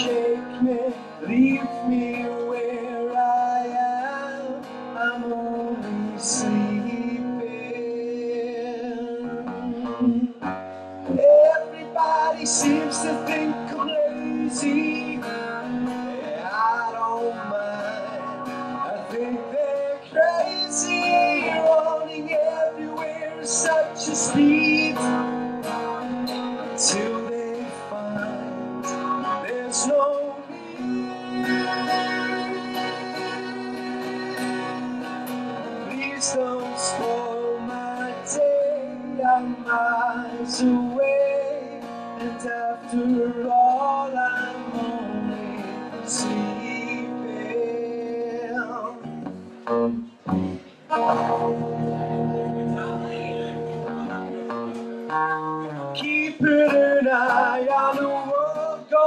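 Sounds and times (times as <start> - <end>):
man singing: 0.0 - 49.3, 50.2 - 59.0
acoustic guitar: 0.0 - 59.0.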